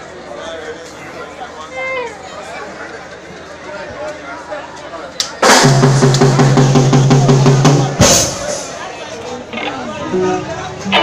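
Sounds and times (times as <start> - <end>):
drum beat: 5.5 - 8.3
live band playing: 5.5 - 8.8, 9.5 - 11.0.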